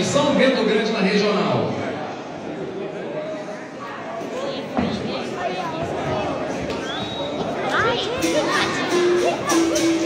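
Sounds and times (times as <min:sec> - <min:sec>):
indistinct voices in echoing hall: 0:00.0 - 0:10.0.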